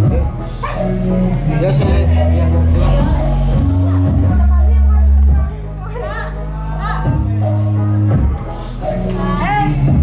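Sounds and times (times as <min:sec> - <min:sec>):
loud music with low bass: 0:00.0 - 0:10.0.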